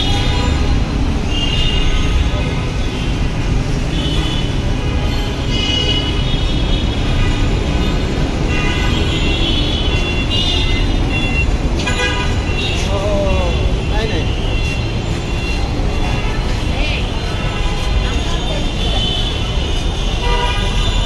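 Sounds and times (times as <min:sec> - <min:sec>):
car horns tooting: 0:00.0 - 0:21.0
rumble of passing vehicles: 0:00.0 - 0:21.0.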